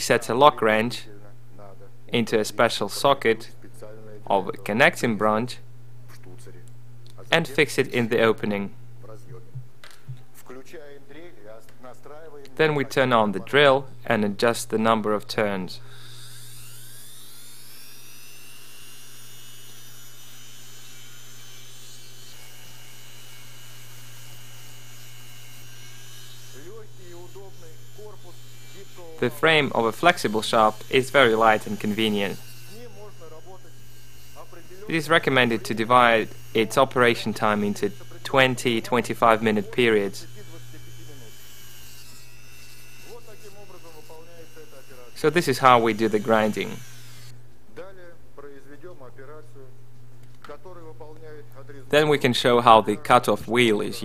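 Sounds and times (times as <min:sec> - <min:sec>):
rotary tool high whine: 0:15.4 - 0:47.4
mini drill grinding metal: 0:15.9 - 0:47.4.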